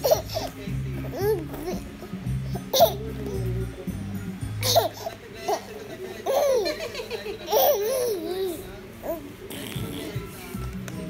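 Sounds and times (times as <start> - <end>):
baby laughing: 0.0 - 3.7, 4.6 - 9.2.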